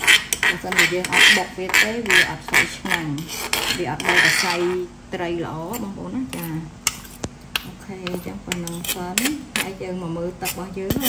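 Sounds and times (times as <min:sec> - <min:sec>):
metal spoon scraping stone mortar: 0:00.0 - 0:04.9, 0:05.6 - 0:11.0.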